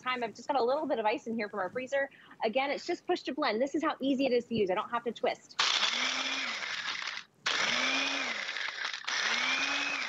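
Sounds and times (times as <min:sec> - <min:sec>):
blender crushing ice: 0:05.6 - 0:10.0.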